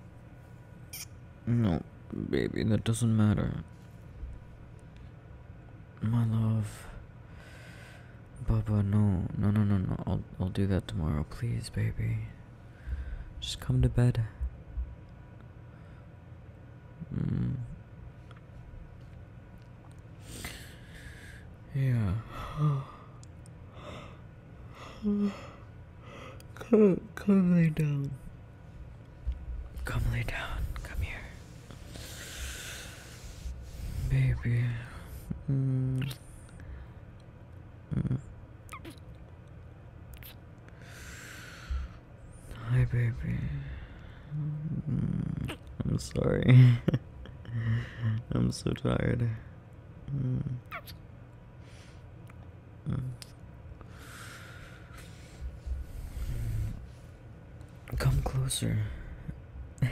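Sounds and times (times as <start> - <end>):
man's low sleepy hum: 0.0 - 59.9
soft breath: 12.6 - 13.4, 30.0 - 35.3, 53.8 - 57.2
man sighing: 22.3 - 23.2.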